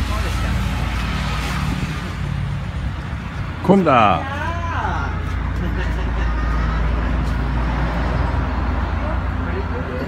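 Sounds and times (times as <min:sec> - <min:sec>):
street traffic: 0:00.0 - 0:10.0
vehicle engine rumbling: 0:00.0 - 0:10.0.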